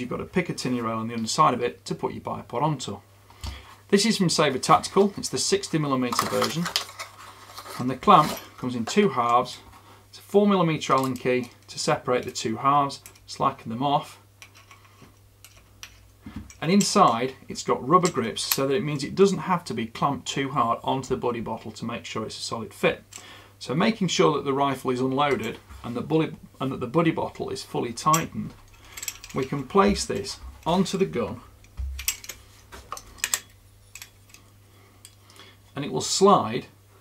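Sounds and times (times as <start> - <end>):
metal clamp clicks and knocks: 31.6 - 34.4.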